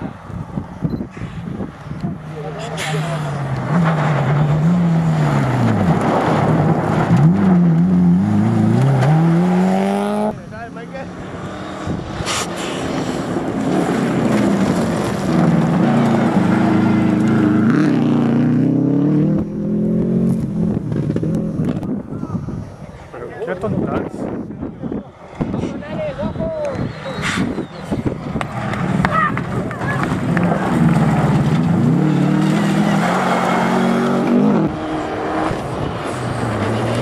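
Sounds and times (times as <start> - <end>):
rally car engine at full throttle: 0.0 - 37.0.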